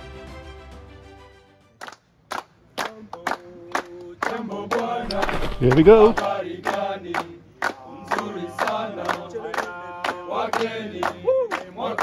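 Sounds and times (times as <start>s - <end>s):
background music: 0.0s - 1.9s
hand claps in a steady beat: 1.8s - 12.0s.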